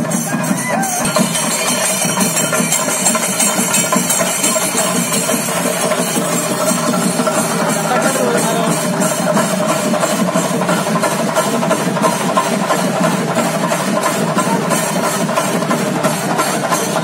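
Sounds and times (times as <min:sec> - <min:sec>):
drums beating fast rhythm: 0:00.0 - 0:17.0
hand cymbals: 0:00.0 - 0:17.0.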